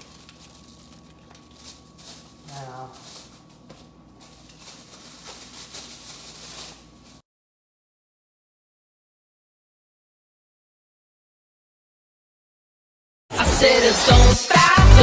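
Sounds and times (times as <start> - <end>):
short low voice sound: 2.5 - 3.0.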